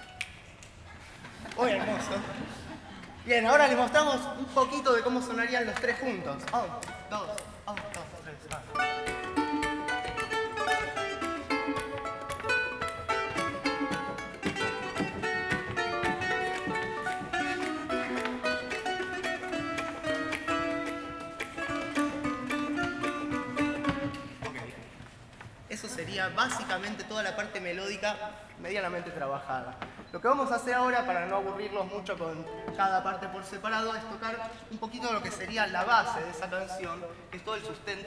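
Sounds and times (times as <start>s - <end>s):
ukuleles strumming: 6.4s - 25.0s, 32.3s - 33.6s
hawaiian lap guitar melody: 8.7s - 24.5s, 32.4s - 32.8s.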